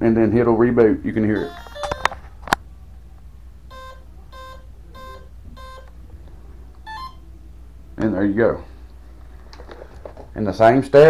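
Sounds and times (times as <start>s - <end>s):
low steady hum: 0.0s - 11.0s
motor beep rising two notes: 1.4s - 2.0s, 3.7s - 5.9s, 6.9s - 7.2s.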